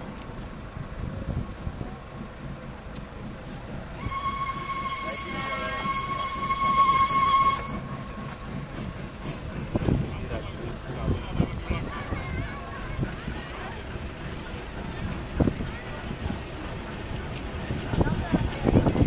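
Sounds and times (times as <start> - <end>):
steam locomotive whistle: 3.9 - 8.4.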